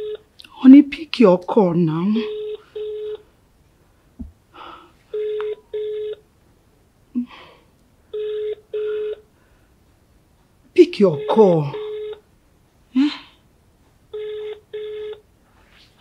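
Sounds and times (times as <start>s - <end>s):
telephone ringback tone: 0.0s - 0.2s, 2.1s - 3.2s, 5.1s - 6.2s, 8.1s - 9.3s, 11.0s - 12.2s, 14.1s - 15.2s.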